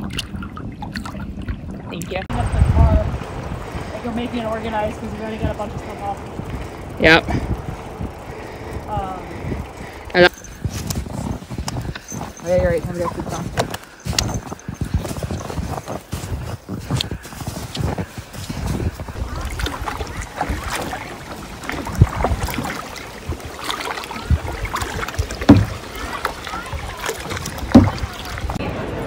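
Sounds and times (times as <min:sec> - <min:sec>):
paddle strokes in water: 0:03.2 - 0:28.8
footsteps crunching on snow: 0:10.6 - 0:19.8
paddle knocking against kayak: 0:19.2 - 0:28.6
walking pole strikes: 0:25.4 - 0:25.8, 0:27.7 - 0:28.0.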